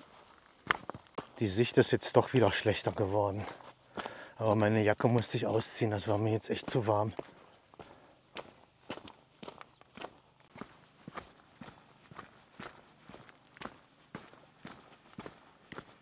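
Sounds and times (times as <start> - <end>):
footsteps on mountain path: 0.0 - 16.0.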